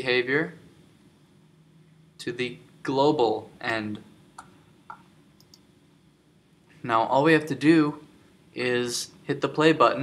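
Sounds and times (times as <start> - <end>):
computer mouse clicks: 4.4 - 5.7
man speaking: 8.6 - 10.0.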